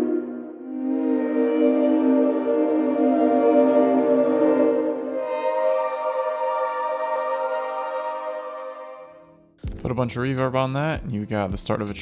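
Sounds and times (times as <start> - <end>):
sustained ambient synth pad chords: 0.0 - 9.6.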